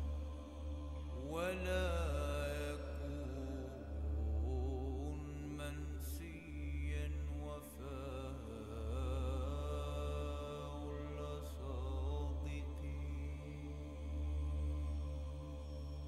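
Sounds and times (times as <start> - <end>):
solo voice chanting: 0.0 - 15.4
low steady drone: 0.0 - 16.0.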